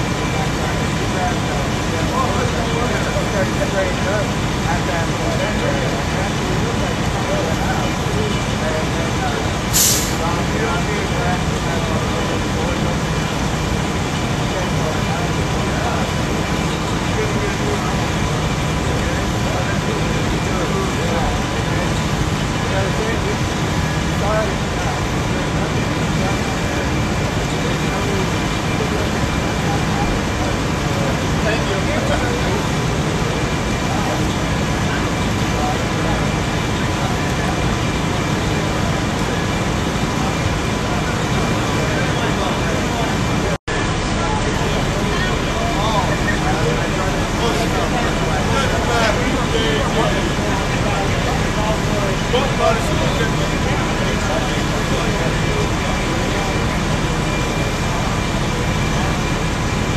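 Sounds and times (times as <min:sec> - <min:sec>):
fire engine running: 0:00.0 - 0:59.9.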